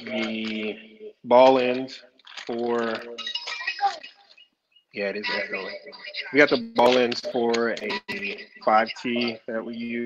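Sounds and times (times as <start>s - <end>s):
person speaking: 0.0s - 4.3s, 5.0s - 10.0s.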